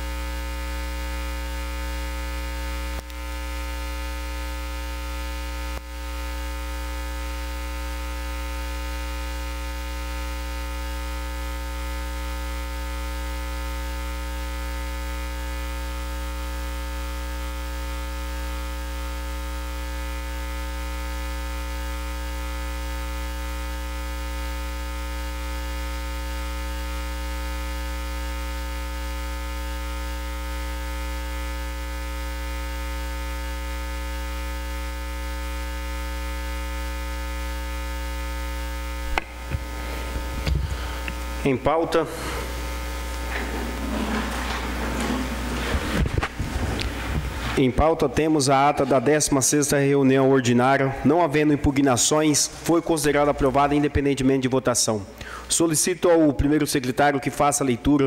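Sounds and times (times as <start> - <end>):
electrical mains hum: 0.0 - 58.0.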